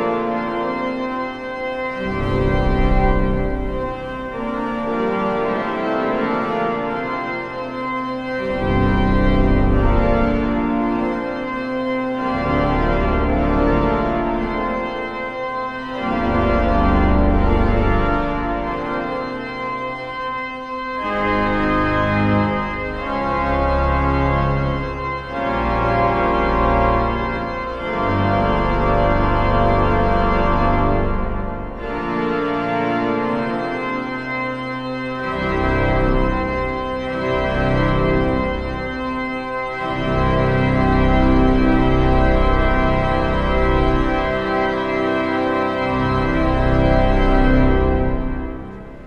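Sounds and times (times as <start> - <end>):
pipe organ playing full chords: 0.0 - 49.0.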